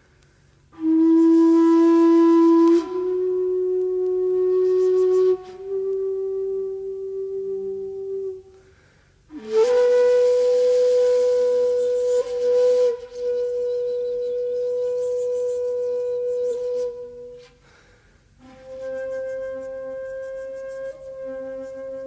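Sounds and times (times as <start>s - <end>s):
shakuhachi long held notes: 0.0s - 22.0s.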